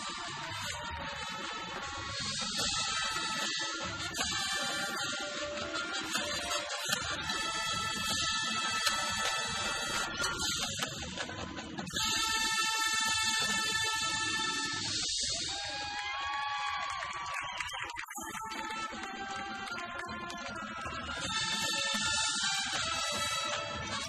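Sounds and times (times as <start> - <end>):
marching band playing: 0.0 - 15.6, 18.3 - 24.0.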